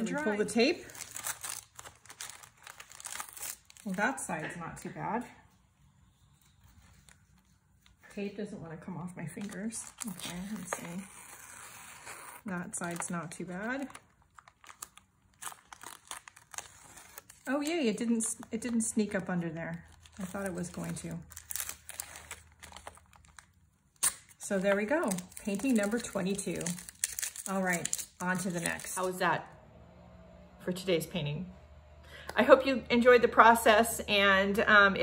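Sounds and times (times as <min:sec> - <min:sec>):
tape peeled off paper: 0:00.8 - 0:04.0, 0:09.4 - 0:18.8.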